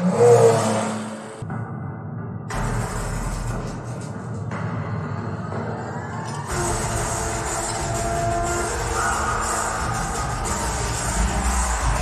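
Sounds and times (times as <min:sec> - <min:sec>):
film soundtrack music over loudspeakers: 0:00.0 - 0:12.0.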